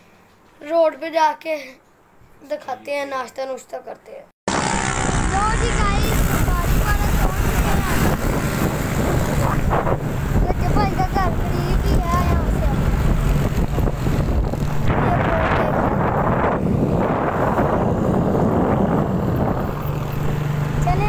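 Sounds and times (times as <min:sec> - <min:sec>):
boy's voice: 0:00.6 - 0:01.8, 0:02.4 - 0:04.3, 0:05.2 - 0:08.4, 0:09.0 - 0:13.1, 0:14.8 - 0:16.1, 0:20.8 - 0:21.0
wind buffeting microphone: 0:05.3 - 0:21.0.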